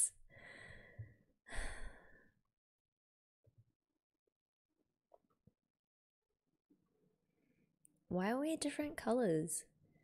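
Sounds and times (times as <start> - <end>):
woman's breathy sigh: 1.5 - 2.1.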